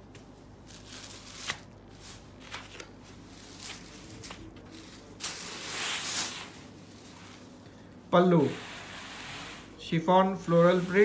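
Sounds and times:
fabric rustling: 0.7s - 7.6s.

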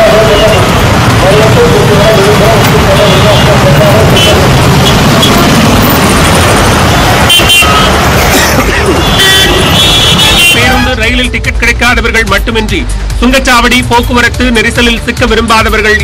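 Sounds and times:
traffic engines and tyre noise: 0.0s - 16.0s
vehicle horns honking: 2.1s - 6.0s, 6.8s - 11.3s.

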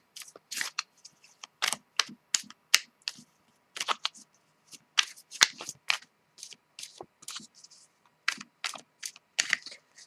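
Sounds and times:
cards being shuffled: 0.2s - 2.2s, 3.8s - 7.6s, 8.3s - 10.0s.

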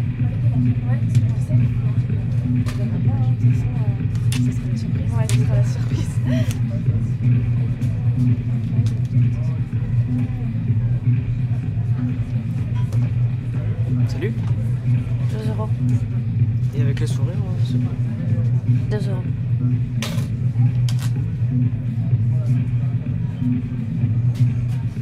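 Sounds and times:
muffled dance music with heavy bass: 0.0s - 25.0s
murmur of crowd voices: 0.0s - 25.0s.

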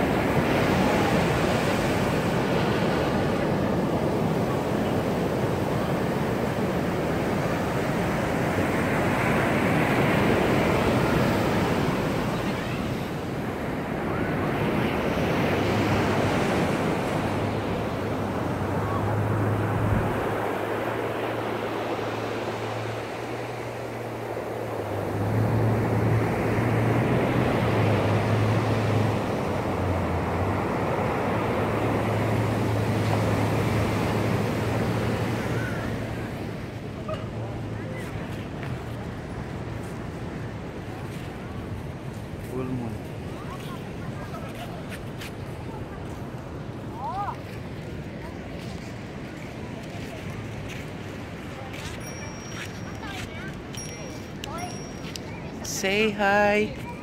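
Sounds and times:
wind on microphone: 0.0s - 20.8s
surf breaking on beach: 0.0s - 57.0s.

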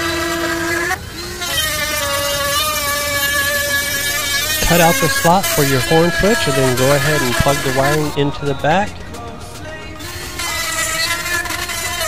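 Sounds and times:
rotary tool cutting plastic: 0.0s - 8.0s, 10.4s - 12.0s.

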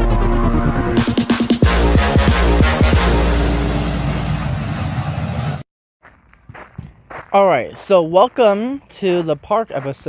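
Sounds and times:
loud rushing noise: 0.0s - 5.6s
faint outdoor background: 6.1s - 10.0s.

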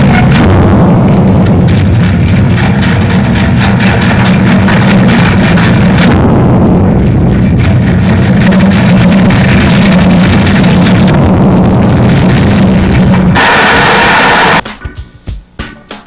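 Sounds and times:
heavy machinery humming: 0.0s - 14.6s.

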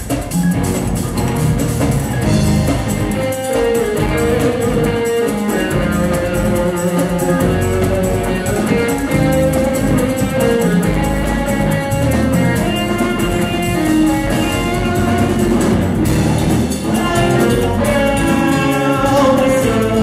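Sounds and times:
drum kit with cymbal beat: 0.0s - 20.0s
electric bass: 0.0s - 20.0s
electric guitars: 0.0s - 20.0s
keyboards: 0.0s - 20.0s.

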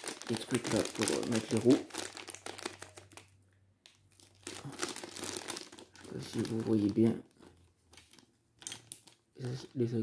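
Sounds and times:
plastic bag crinkling: 0.0s - 3.4s, 4.0s - 9.7s.

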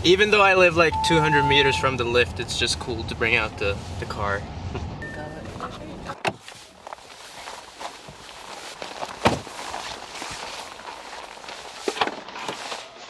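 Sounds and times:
footsteps on packed snow: 6.4s - 11.9s.

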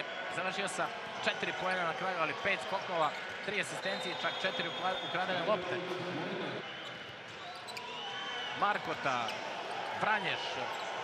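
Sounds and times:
shoe squeaks on court: 6.8s - 8.0s.

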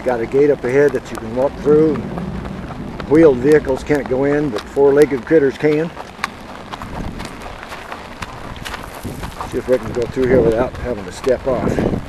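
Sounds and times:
hooves on dirt: 0.0s - 12.0s
steady low rumble: 0.0s - 12.0s.

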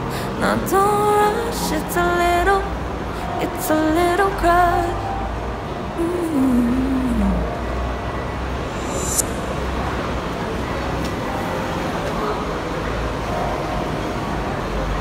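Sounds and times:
road traffic noise: 0.0s - 15.0s.

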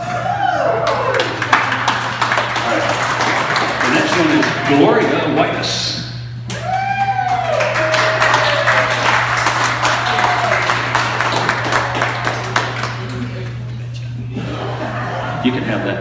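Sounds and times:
rising and falling cheer: 0.0s - 5.0s, 6.4s - 13.1s
crowd clapping: 0.0s - 5.6s, 6.4s - 14.1s.

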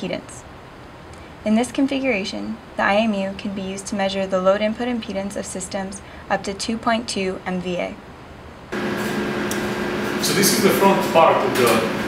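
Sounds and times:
fan-like room noise: 0.0s - 12.0s
low electrical hum: 0.0s - 12.0s.

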